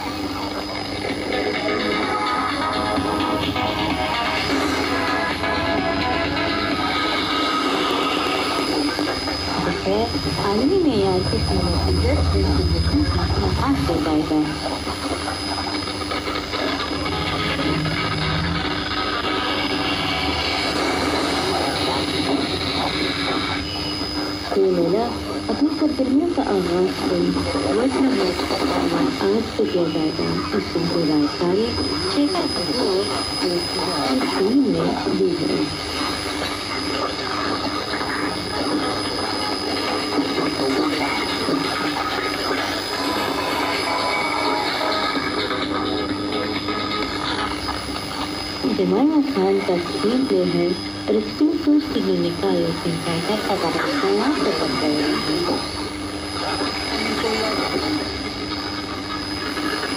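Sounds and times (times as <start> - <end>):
low hum: 0.0 - 59.8
faint radio broadcast: 0.0 - 59.9
radio static hiss: 0.0 - 59.9
faint high whistle: 21.9 - 24.3.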